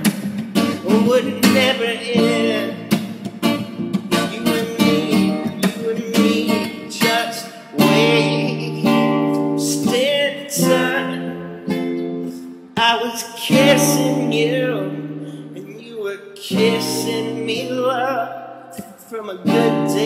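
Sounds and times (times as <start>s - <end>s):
acoustic guitar strumming chords: 0.0s - 20.0s.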